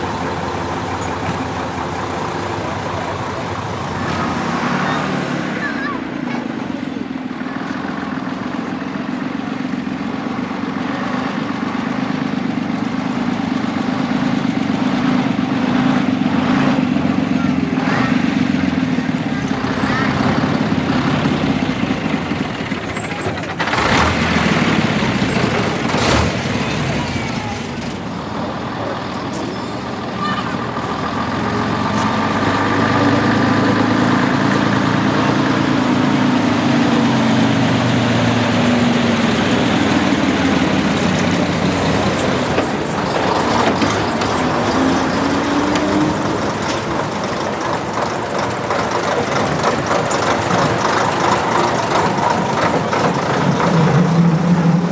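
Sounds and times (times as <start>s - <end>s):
lorry engines running: 0.0s - 54.9s.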